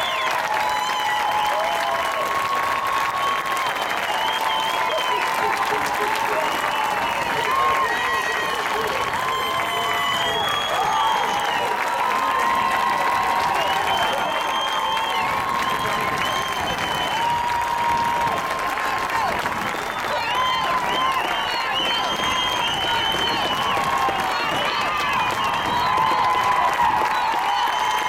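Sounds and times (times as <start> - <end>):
stadium crowd shouting: 0.0 - 28.0.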